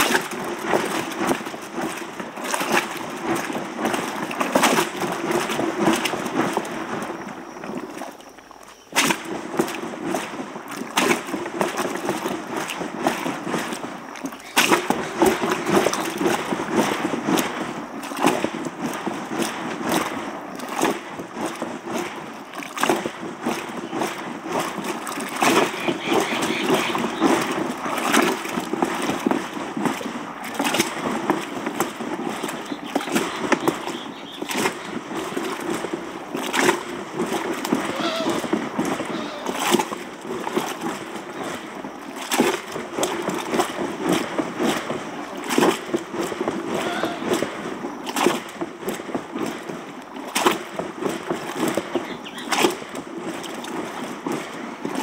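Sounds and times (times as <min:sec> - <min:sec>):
milk splashing in butter churn: 0:00.0 - 0:55.0.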